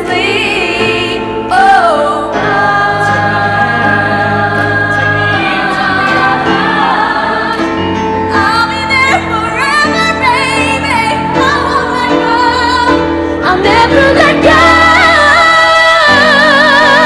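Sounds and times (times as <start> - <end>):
choir singing in harmony: 0.0 - 17.0
lead voice singing: 0.0 - 17.0.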